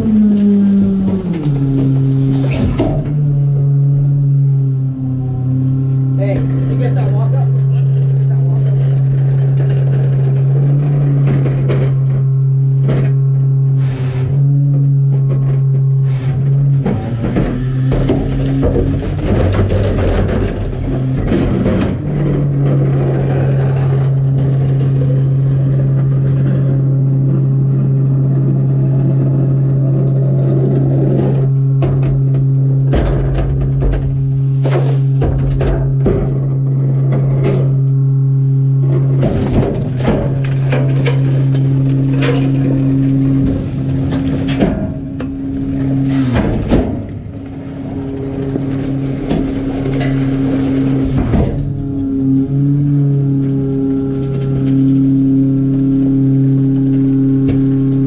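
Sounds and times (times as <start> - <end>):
carts knocking and banging: 0.0 - 58.0
garbage truck engine humming: 0.0 - 58.0
trash clattering into hopper: 14.4 - 26.8, 31.4 - 37.8, 38.9 - 55.7.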